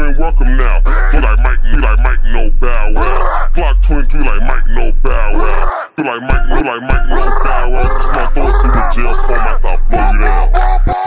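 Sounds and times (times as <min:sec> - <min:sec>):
heavy hip-hop beat: 0:00.0 - 0:11.0
slowed pitched-down rap vocal: 0:00.0 - 0:11.0.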